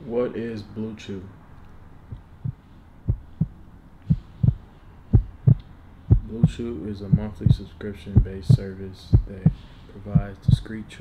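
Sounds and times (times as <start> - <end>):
heartbeat thumps: 2.1 - 10.7.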